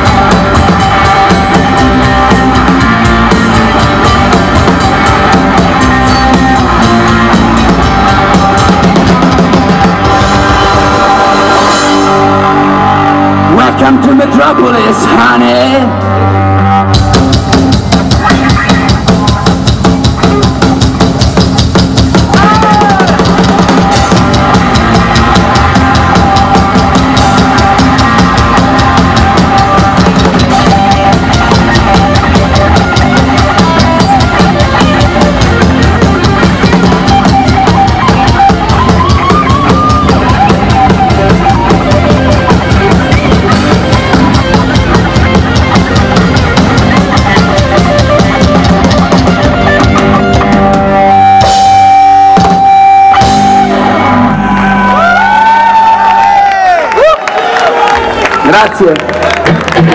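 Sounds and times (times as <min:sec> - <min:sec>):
guitar sliding high squeals: 0:00.0 - 0:13.4, 0:22.2 - 0:56.4
punk rock band playing: 0:00.0 - 0:59.9.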